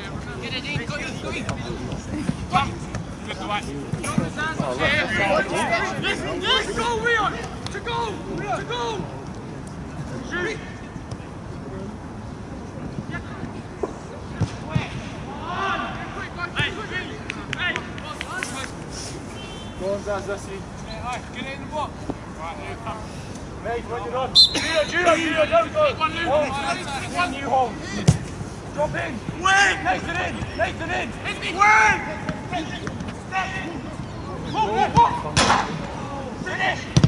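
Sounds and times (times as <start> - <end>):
players shouting and calling: 0.0 - 37.0
football players shouting: 24.3 - 37.0.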